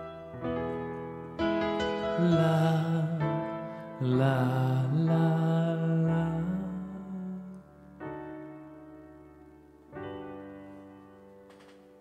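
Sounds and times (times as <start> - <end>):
digital piano chords: 0.0 - 12.0
man singing long notes: 2.2 - 7.7.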